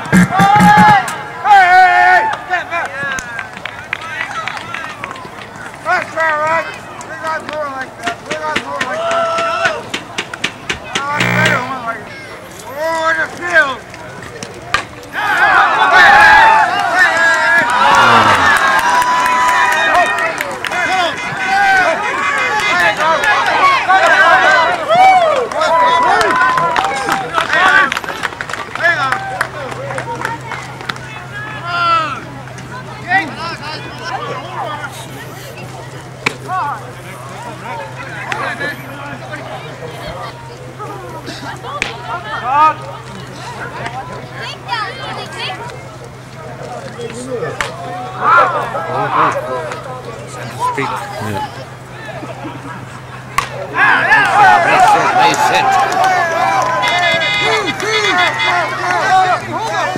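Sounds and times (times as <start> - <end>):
voices calling out: 6.7 - 59.9
people shouting: 15.2 - 19.6, 53.6 - 59.9
softball bat crack: 53.3 - 53.6.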